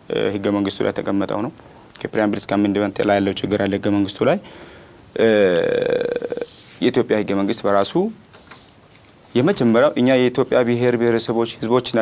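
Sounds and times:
man speaking: 0.0s - 4.5s, 5.1s - 8.2s, 9.3s - 12.0s.

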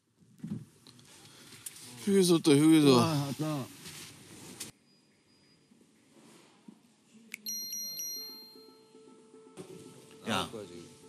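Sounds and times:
bell-like chime tones: 7.5s - 9.0s.

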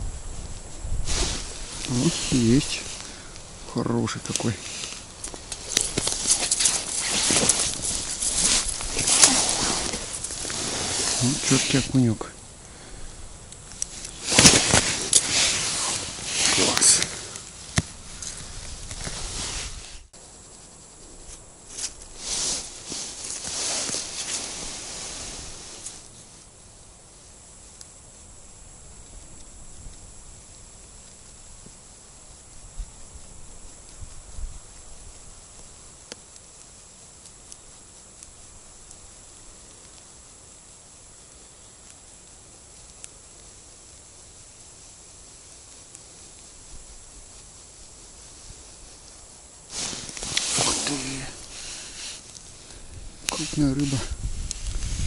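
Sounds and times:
faint steady hiss: 0.0s - 55.0s
rustling and handling noises: 0.6s - 12.3s, 13.4s - 26.5s, 42.6s - 55.0s.

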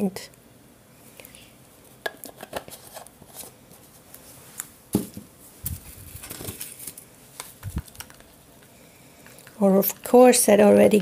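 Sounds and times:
paint bottles clicking and knocking: 7.6s - 10.1s.

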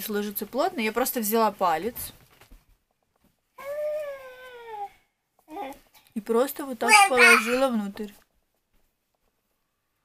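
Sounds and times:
toddler vocal sound: 3.6s - 5.9s, 6.8s - 7.7s.

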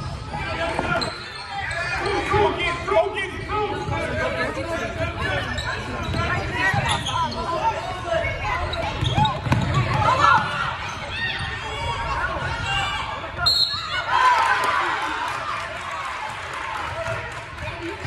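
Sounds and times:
spectators talking and shouting: 0.0s - 18.0s.

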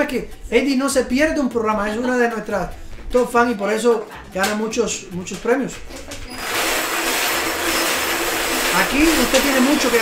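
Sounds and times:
balls rattling in spinning wire cage: 6.0s - 10.0s.

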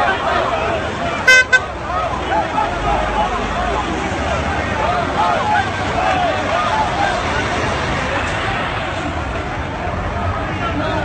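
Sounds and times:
crowd chanting: 0.0s - 11.0s
horn blasts: 1.2s - 1.8s.

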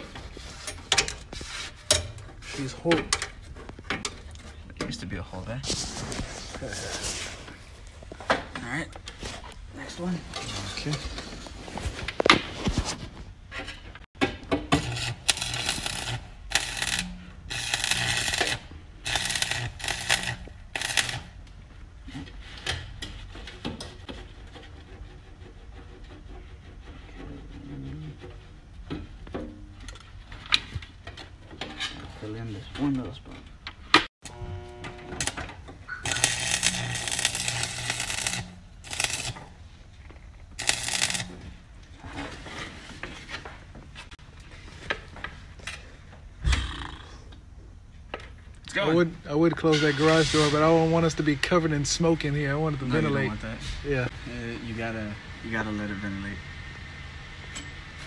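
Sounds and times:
welding arc crackling: 14.7s - 21.4s, 34.2s - 35.4s, 36.0s - 39.6s, 40.5s - 41.5s.

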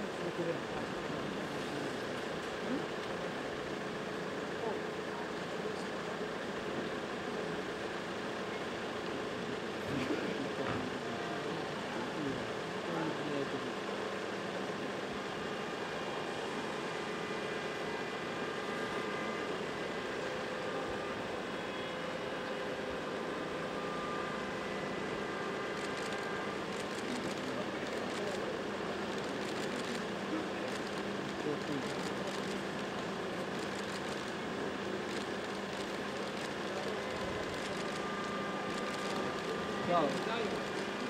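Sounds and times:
crowd chatter: 0.0s - 41.0s
traffic hum: 24.6s - 41.0s.

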